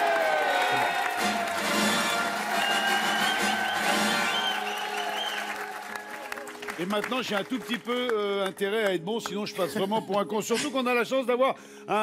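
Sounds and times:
studio audience applauding: 0.0 - 9.6
game show music sting: 1.1 - 4.6.

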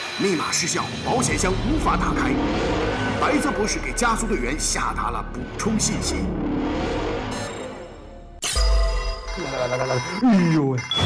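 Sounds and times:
background music: 0.0 - 11.0
voice: 0.2 - 2.4, 3.2 - 6.3, 9.4 - 11.0.

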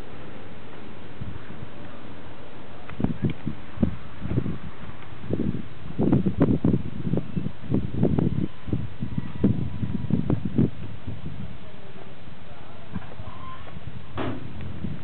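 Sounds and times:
wind buffeting microphone: 0.7 - 15.0.

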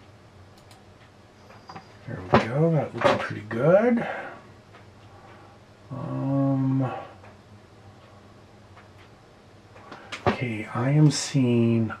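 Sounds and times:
man humming mmm: 5.9 - 7.1.

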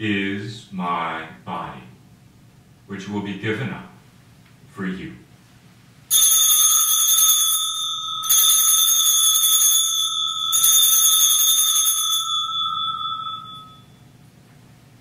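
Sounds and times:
bell ringing: 6.1 - 14.1.

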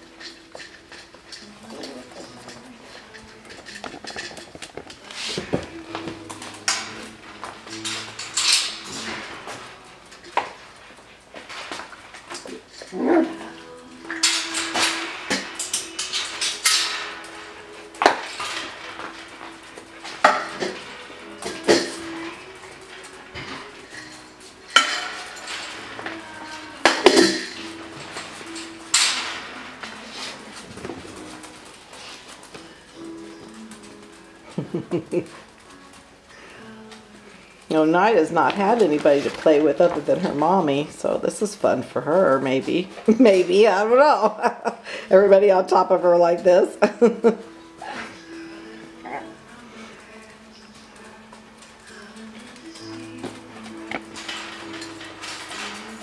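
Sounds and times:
puppies scuffling: 0.0 - 56.0
wire pen clinking and rattling: 0.2 - 10.5, 11.3 - 33.9.

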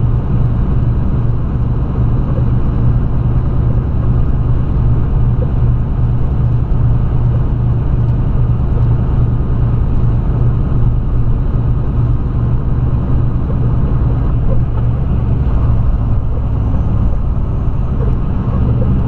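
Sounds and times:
road noise: 0.0 - 19.0
truck diesel engine drone: 0.0 - 19.0.

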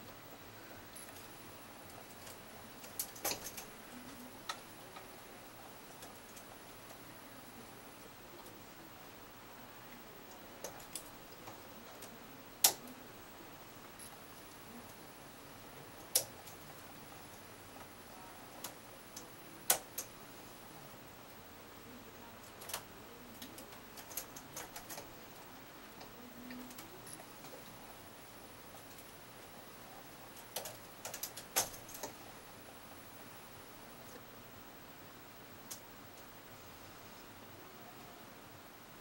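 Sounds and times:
knitting machine metallic clicks: 2.2 - 4.6, 30.4 - 32.2.

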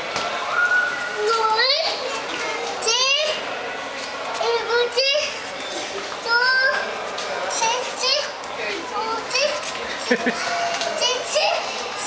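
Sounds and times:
children's voices and squeals: 0.4 - 3.6, 4.3 - 9.8, 10.4 - 12.0.

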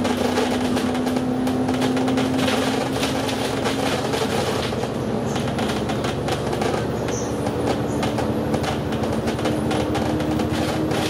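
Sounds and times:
bus engine and road drone: 0.0 - 11.0.

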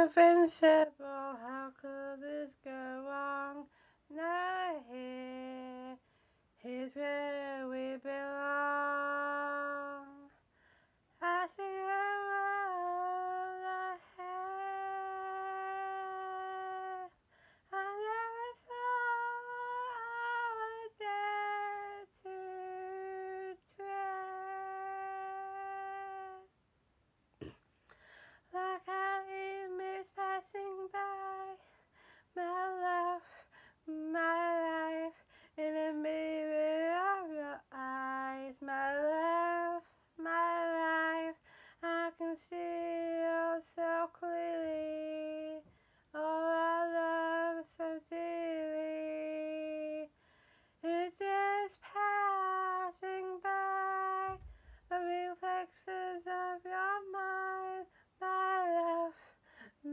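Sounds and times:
woman singing unaccompanied: 0.0 - 10.5, 11.1 - 26.6, 28.4 - 50.2, 50.8 - 59.9.

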